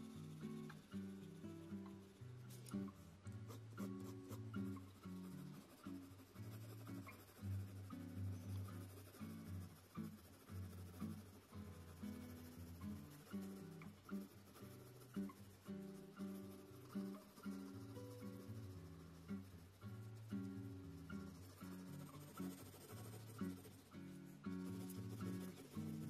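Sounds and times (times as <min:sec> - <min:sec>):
plucked acoustic guitar: 0:00.0 - 0:26.0.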